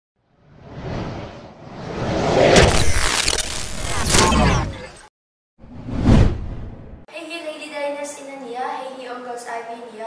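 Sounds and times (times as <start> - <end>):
rocket launch rush: 0.6 - 4.8
sharp whoosh: 5.6 - 7.0.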